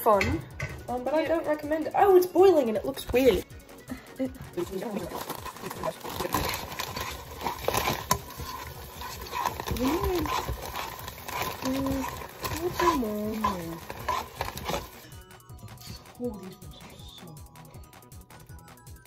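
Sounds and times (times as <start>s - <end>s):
taps and clatter at a pot: 0.0s - 1.0s, 4.6s - 15.0s.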